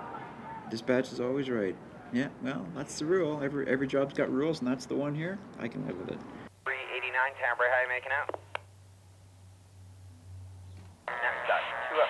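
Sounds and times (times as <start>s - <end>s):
voice over two-way radio: 6.7s - 8.6s, 11.1s - 12.0s.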